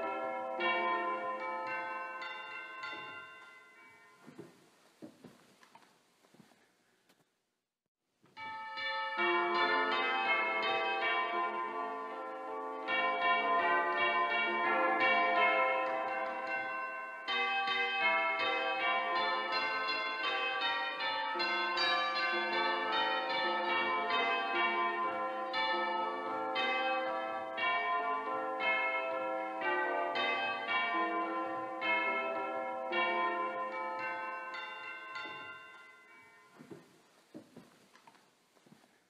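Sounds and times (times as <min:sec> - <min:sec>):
bells ringing: 0:00.0 - 0:04.8, 0:08.4 - 0:37.2.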